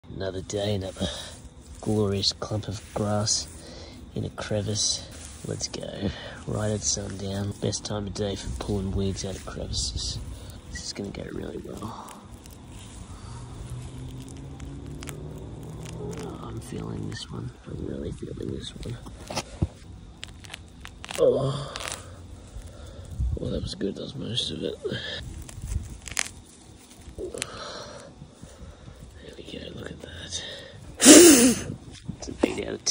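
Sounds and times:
grass and roots crackling: 0.0 - 32.9
steady low hum: 0.0 - 32.9.

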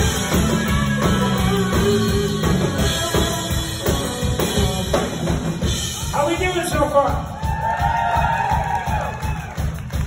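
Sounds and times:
country band playing: 0.0 - 10.0.

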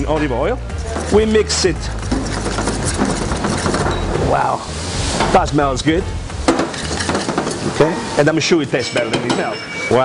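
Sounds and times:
utensil clicking and scraping bowl: 2.0 - 4.1.

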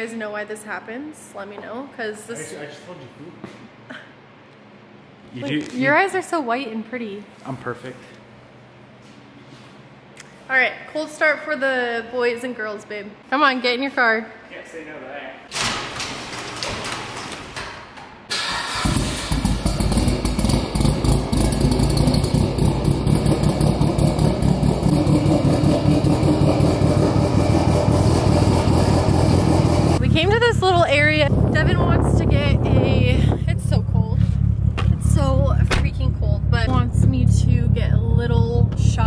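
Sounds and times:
car engine starting and idling: 18.3 - 39.0.

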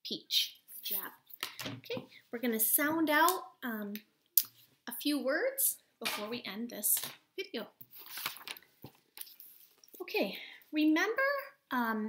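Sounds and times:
paper rustling: 7.8 - 10.0.

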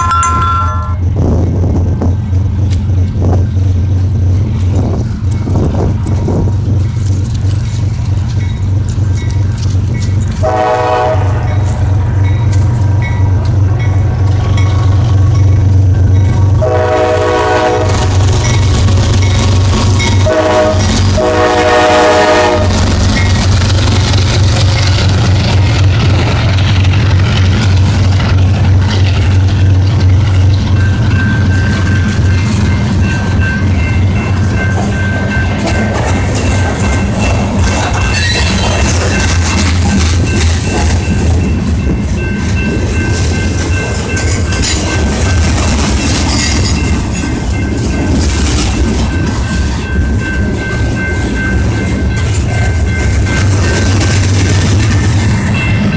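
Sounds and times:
crossing bell dinging: 0.0 - 1.9, 2.6 - 55.9
diesel locomotive engines rumbling: 0.0 - 55.9
train wheels rattling on rails: 0.0 - 55.9
train horn blasts: 10.4 - 12.0, 16.6 - 18.5, 20.0 - 22.9.

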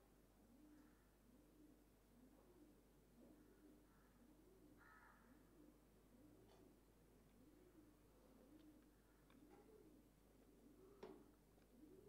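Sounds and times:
pigeon cooing: 7.4 - 12.0.

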